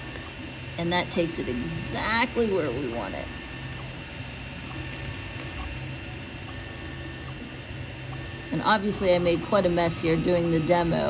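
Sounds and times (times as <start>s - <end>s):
cooling fans whirring: 0.0s - 11.0s
stepper motors humming: 0.0s - 11.0s.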